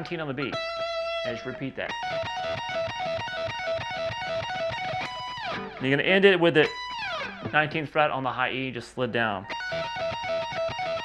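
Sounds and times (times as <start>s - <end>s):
electric guitar playing rapid lick: 0.0s - 7.9s, 9.4s - 11.0s.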